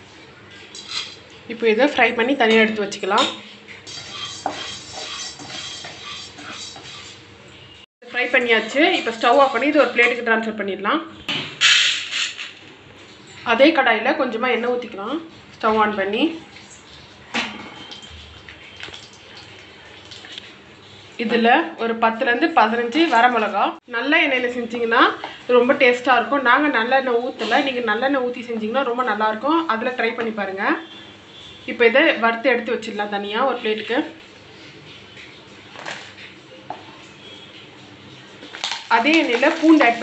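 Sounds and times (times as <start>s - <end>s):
chillies sizzling in oil: 0.6s - 1.2s, 3.8s - 7.2s, 38.5s - 40.0s
wooden spatula scraping: 3.7s - 7.2s, 8.3s - 10.2s.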